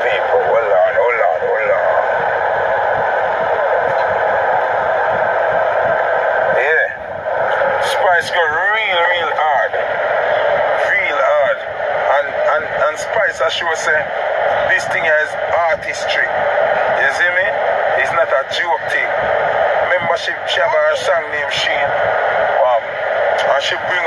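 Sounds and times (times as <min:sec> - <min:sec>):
man talking: 0:00.0 - 0:02.0, 0:06.6 - 0:07.0, 0:07.8 - 0:09.8, 0:10.8 - 0:14.1, 0:14.7 - 0:16.3, 0:17.0 - 0:19.1, 0:19.9 - 0:21.9, 0:22.6 - 0:22.8, 0:23.4 - 0:24.0.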